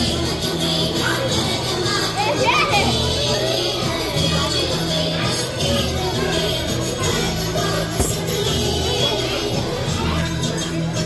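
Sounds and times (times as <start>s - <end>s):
children chattering: 0.0s - 11.0s
dance music: 7.0s - 11.0s.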